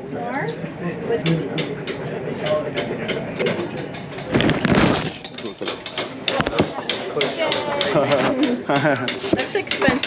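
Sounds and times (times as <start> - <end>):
sharp clicks and knocks: 1.2 - 10.0.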